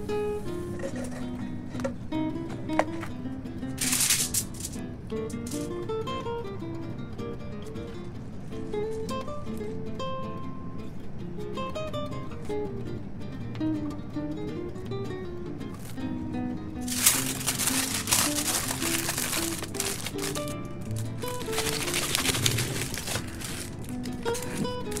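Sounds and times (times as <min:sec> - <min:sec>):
plucked guitar background music: 0:00.0 - 0:25.0
aluminium foil crumpling: 0:03.8 - 0:04.8, 0:05.4 - 0:05.7, 0:16.8 - 0:25.0.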